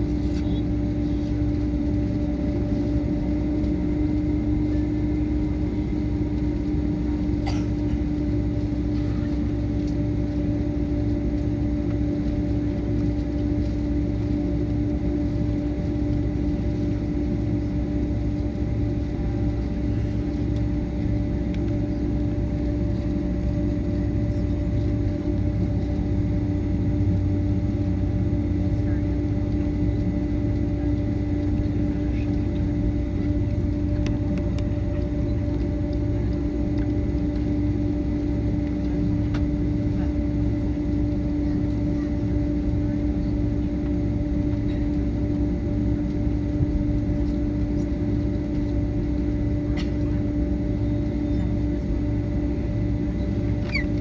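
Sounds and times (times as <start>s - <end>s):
constant cabin hum: 0.0s - 54.0s
low drone of jet engines: 0.0s - 54.0s.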